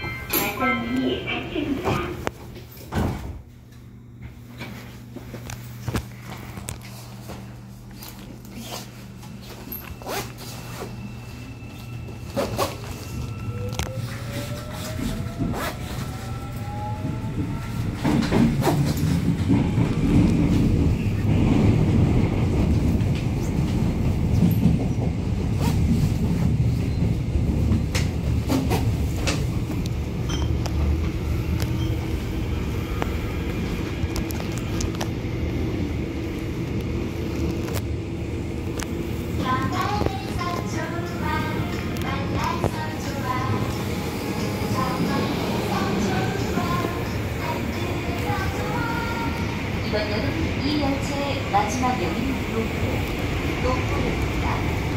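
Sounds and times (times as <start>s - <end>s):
train wheels rumbling on rails: 6.2s - 54.9s.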